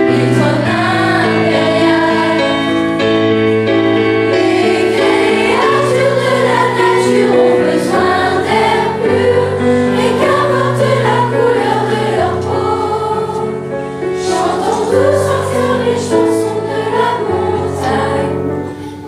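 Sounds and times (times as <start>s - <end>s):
children's choir singing: 0.0s - 3.3s, 4.3s - 19.0s
instrumental accompaniment: 0.0s - 19.0s.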